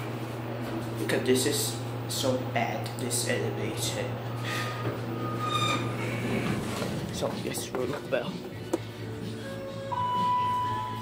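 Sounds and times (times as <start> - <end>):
elevator beep: 4.2 - 6.2, 9.7 - 11.0
background music: 6.8 - 11.0.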